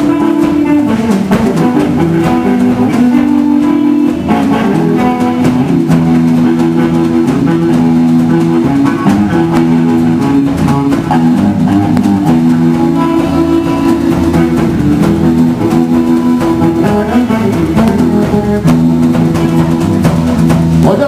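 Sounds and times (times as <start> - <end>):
acoustic guitar: 0.0 - 21.0
drum kit: 0.0 - 21.0
electric bass guitar: 0.0 - 21.0.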